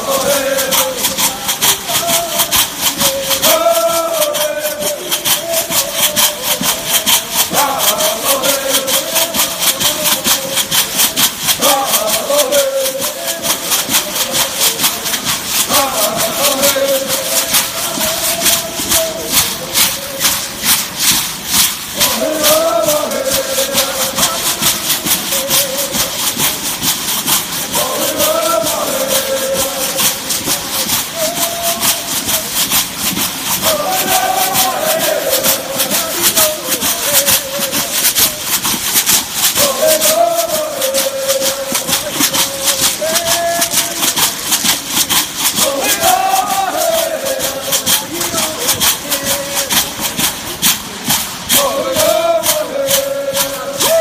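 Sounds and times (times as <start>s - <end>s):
people singing short phrases: 0.0s - 54.0s
shell rattles shaking: 0.0s - 54.0s.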